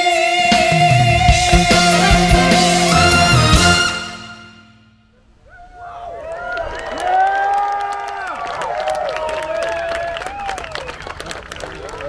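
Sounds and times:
crowd cheering and whooping: 0:05.5 - 0:12.0
scattered clapping: 0:06.6 - 0:12.0.

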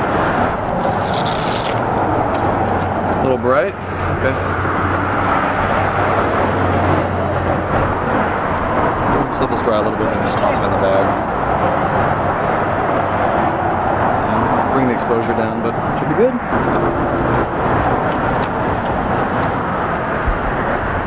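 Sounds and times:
rumbling background noise: 0:00.0 - 0:21.0.

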